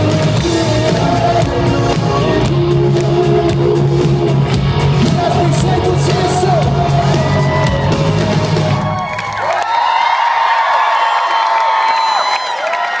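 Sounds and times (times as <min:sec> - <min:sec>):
live rock band playing: 0:00.0 - 0:09.2
audience cheering and whooping: 0:06.7 - 0:13.0.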